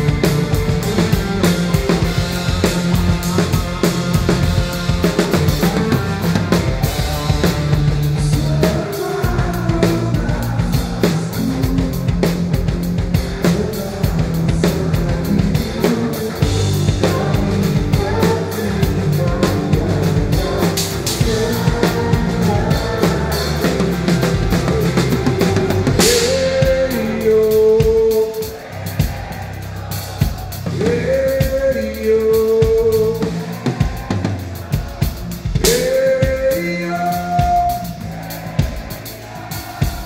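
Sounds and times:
drum kit playing hard: 0.0s - 40.0s
guitar: 0.0s - 40.0s
keyboards: 0.0s - 40.0s.

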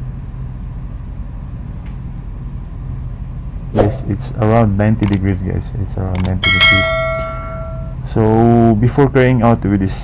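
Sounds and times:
machinery humming: 0.0s - 10.0s.

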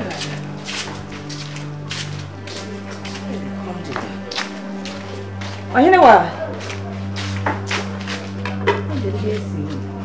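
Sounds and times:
low sustained keyboard notes: 0.0s - 10.0s.

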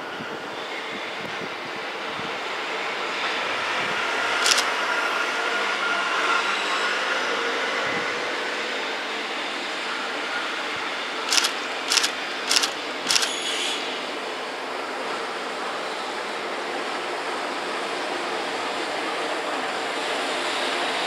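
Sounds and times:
freight train passing: 0.0s - 21.0s.

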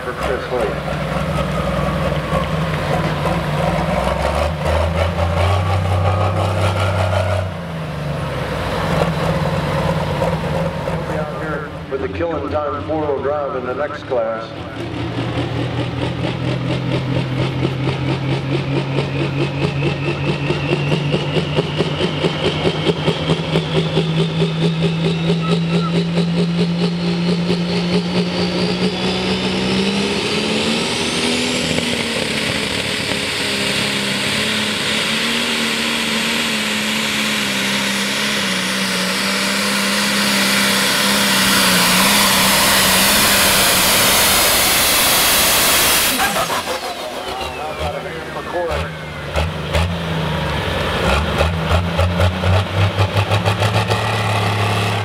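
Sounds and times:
tractor engine revving with whine: 0.0s - 55.0s.

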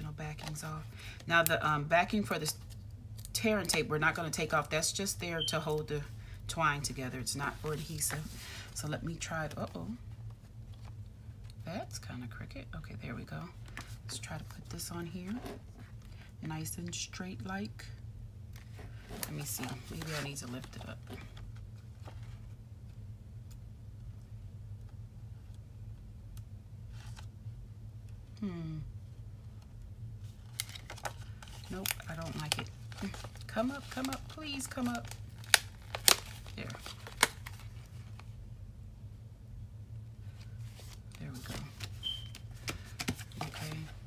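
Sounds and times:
steady low hum: 0.0s - 44.0s
paper handling: 18.6s - 22.4s, 30.4s - 38.3s, 40.3s - 44.0s.

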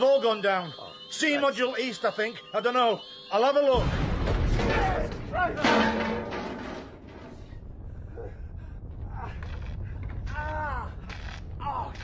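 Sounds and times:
sharp explosive burst: 3.8s - 6.0s
explosion blast with deep rumble: 3.8s - 12.0s.

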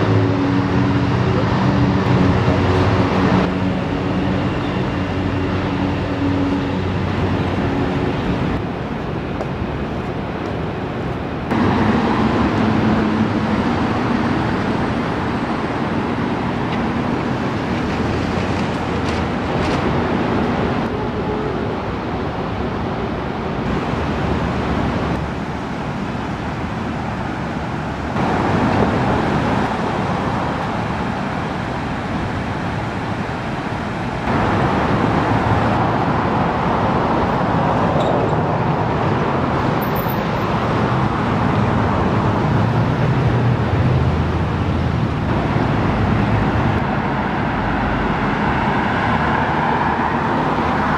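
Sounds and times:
passing cars rushing: 0.0s - 50.9s.

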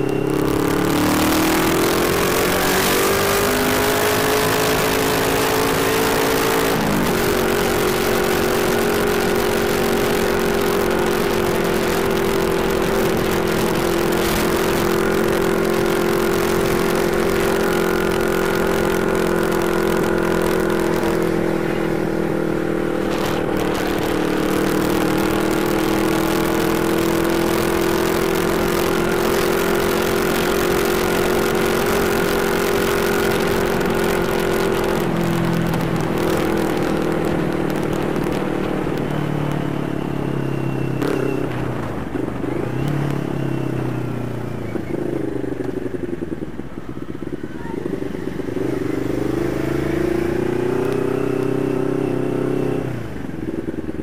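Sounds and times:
motorcycle engine cruising: 0.0s - 54.0s.

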